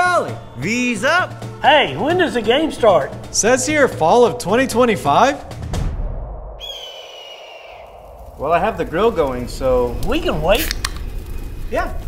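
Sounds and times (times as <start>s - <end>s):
high bird-like whistling call: 6.6s - 8.1s.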